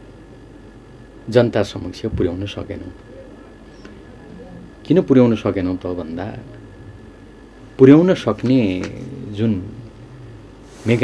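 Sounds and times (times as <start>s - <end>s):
man speaking: 7.8s - 9.9s.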